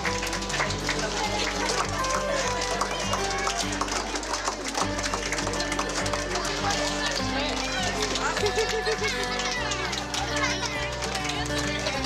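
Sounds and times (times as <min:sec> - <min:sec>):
children shouting and cheering: 0:00.0 - 0:12.0
music with steady bass line: 0:00.0 - 0:12.0.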